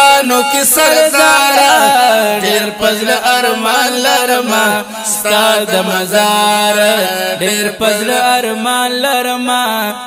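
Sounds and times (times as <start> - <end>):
wordless vocal chanting and humming: 0.0 - 10.0.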